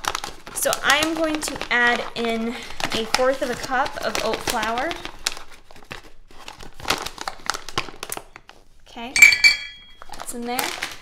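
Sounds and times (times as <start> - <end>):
packaging crinkling and rustling: 0.0 - 8.8, 10.0 - 11.0.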